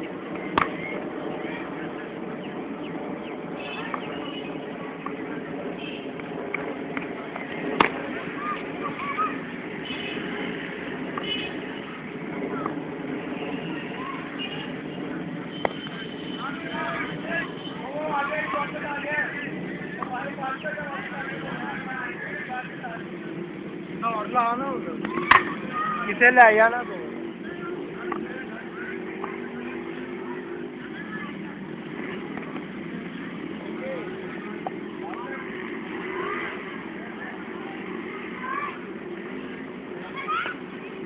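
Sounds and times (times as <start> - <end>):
steady background hum: 0.0 - 41.0
voices calling out: 0.0 - 41.0.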